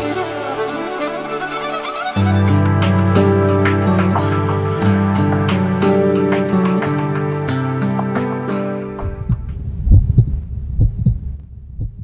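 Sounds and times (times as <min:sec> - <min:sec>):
heartbeat thumps: 0:09.0 - 0:12.0.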